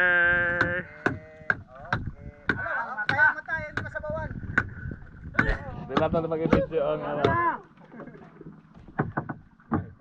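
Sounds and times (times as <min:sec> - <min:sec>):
sharp knocks on wooden canoe: 0:00.5 - 0:07.5, 0:08.8 - 0:10.0.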